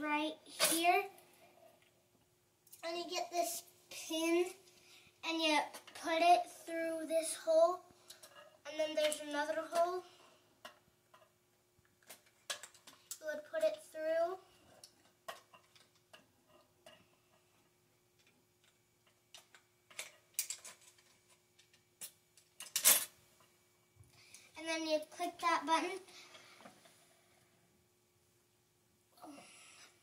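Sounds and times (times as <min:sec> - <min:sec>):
plastic parts clicking and knocking: 0:11.9 - 0:13.2, 0:14.9 - 0:17.0, 0:18.2 - 0:23.0.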